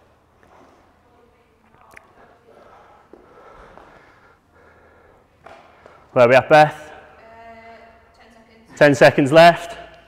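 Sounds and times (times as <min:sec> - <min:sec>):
man breathing: 0:02.2 - 0:06.1.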